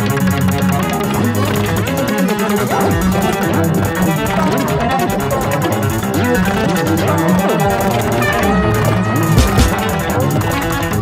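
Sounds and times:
electronic track with fast pulse: 0.0 - 11.0.

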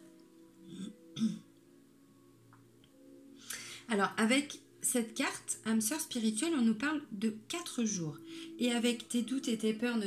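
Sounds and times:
soft background music: 0.0 - 10.0
woman clearing her throat: 0.7 - 1.5.

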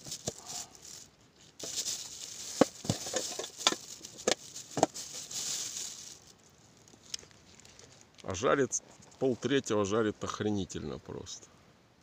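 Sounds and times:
rustling of small objects: 0.0 - 9.4.

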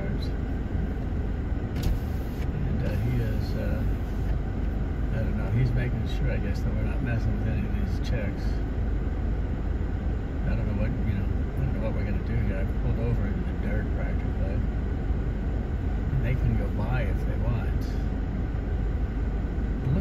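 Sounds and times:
vehicle engine idling: 0.0 - 20.0.

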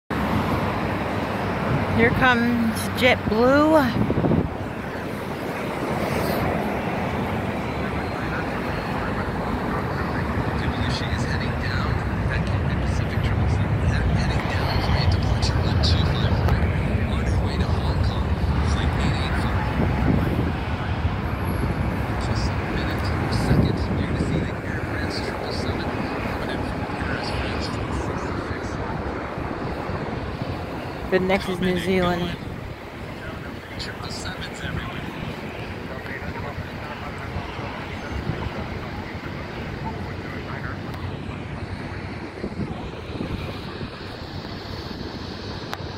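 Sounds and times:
jet engines rumbling: 0.1 - 45.9.

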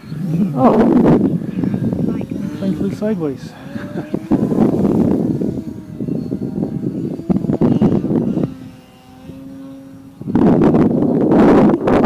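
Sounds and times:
model airplane motor droning: 0.0 - 12.0
wind buffeting microphone: 0.0 - 12.0.

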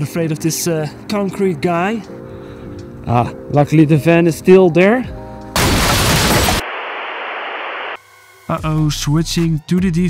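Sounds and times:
explosion blast: 5.6 - 7.4
steady static hiss: 6.2 - 8.0.

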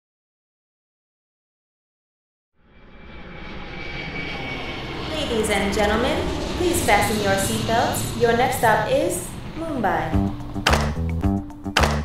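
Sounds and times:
faint high whine: 2.6 - 10.6
airliner engine rumble: 2.6 - 11.7.

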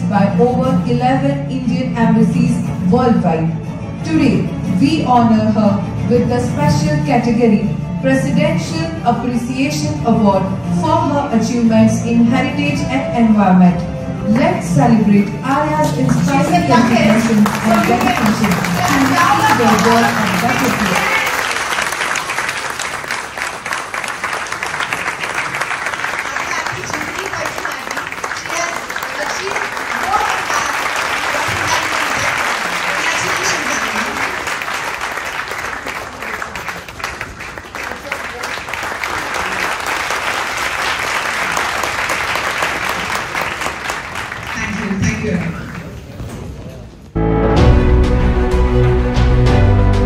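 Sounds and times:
audience applauding: 16.0 - 46.1.

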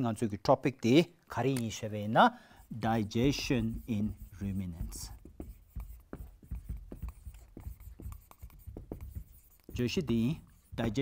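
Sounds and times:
marker writing on whiteboard: 1.6 - 11.0.

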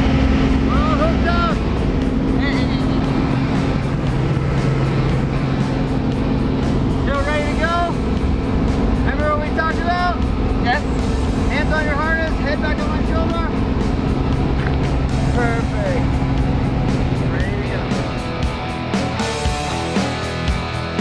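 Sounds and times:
voices: 0.0 - 8.2, 8.9 - 18.4
plane engine and propeller drone: 0.0 - 21.0.

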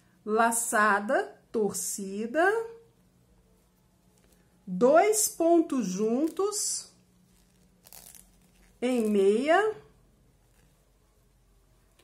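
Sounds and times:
woman's voice: 0.3 - 2.8, 4.7 - 7.0, 8.8 - 9.9
faint yarn rustle: 3.4 - 12.0.

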